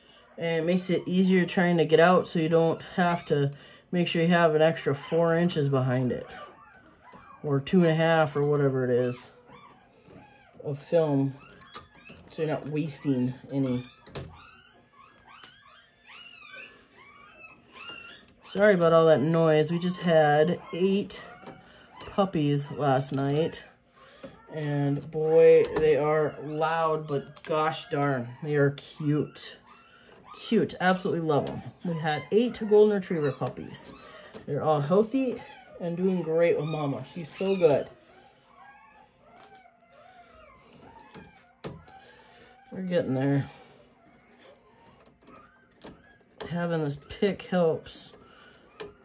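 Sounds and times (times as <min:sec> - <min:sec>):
puppies crying: 0:00.0 - 0:49.0.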